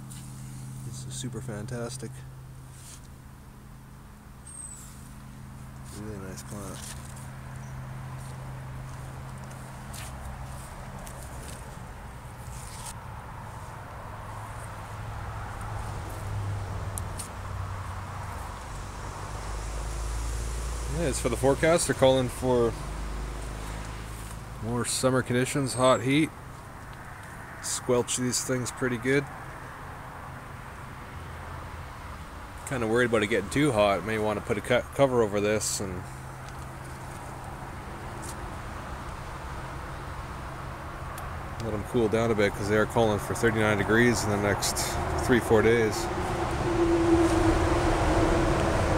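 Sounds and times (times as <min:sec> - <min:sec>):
constant low hum: 0:00.0 - 0:48.9.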